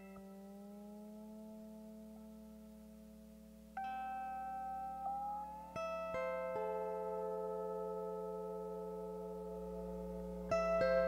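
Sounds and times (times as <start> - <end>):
lap steel guitar notes: 0.0 - 11.0
low electrical hum: 0.0 - 11.0.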